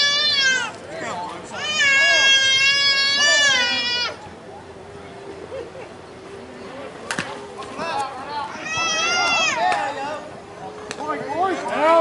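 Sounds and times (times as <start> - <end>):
small child crying: 1.6 - 4.2, 8.5 - 9.6.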